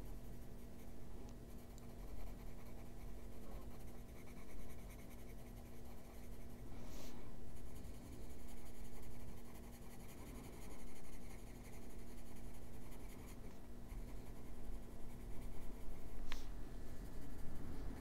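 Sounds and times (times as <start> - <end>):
pencil rubbing on paper: 0.0 - 18.0.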